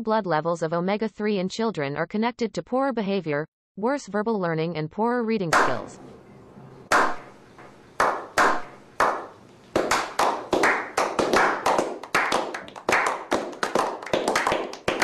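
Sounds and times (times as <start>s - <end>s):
people clapping hands: 5.6s - 5.8s, 6.9s - 7.2s, 8.0s - 15.0s.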